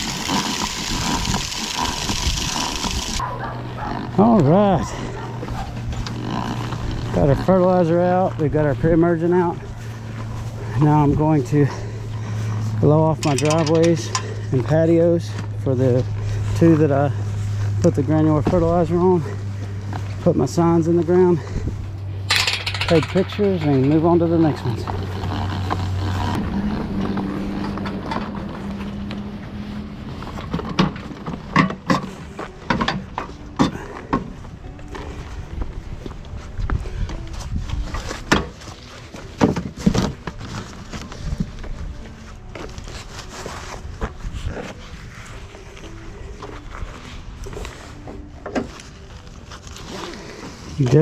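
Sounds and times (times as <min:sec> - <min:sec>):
metal clicks and clanks: 0:13.1 - 0:14.3, 0:22.3 - 0:25.0
ratchet strap: 0:22.3 - 0:27.7.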